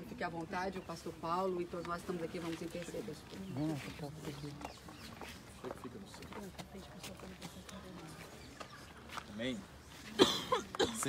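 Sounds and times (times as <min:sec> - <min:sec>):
group gathering: 0:00.0 - 0:11.0.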